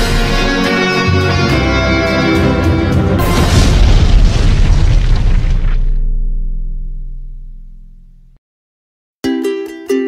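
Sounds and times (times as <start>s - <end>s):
held music chord: 0.0s - 3.3s
cinematic boom: 3.0s - 8.4s.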